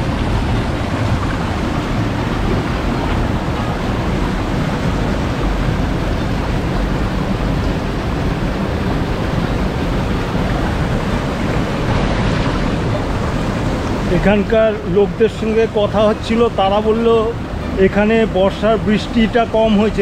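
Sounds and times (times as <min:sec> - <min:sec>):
water rushing over rocks: 0:00.0 - 0:20.0.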